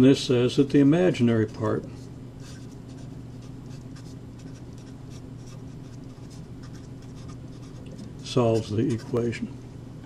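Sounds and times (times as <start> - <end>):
steady low hum: 0.0 - 10.0
marker scratching on paper: 2.4 - 7.8.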